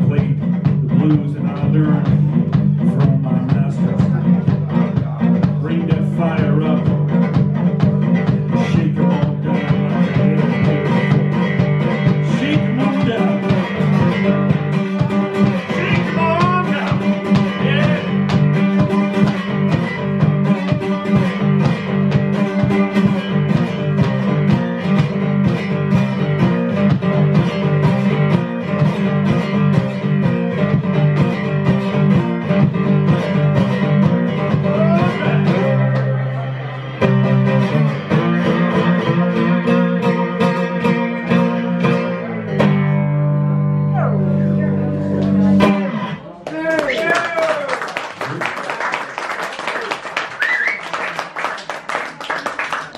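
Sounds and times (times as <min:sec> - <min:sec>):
steady percussive beat: 0:00.0 - 0:41.2
slide guitar blues: 0:00.0 - 0:46.4.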